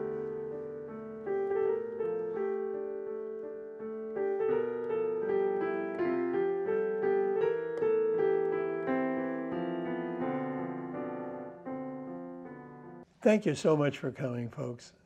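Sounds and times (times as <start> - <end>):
digital piano chords: 0.0 - 13.1.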